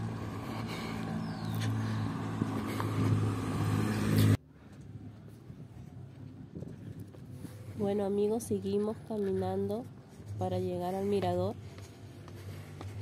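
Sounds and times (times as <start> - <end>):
faint street sound: 0.0 - 13.0
vehicle engine humming: 0.0 - 13.0.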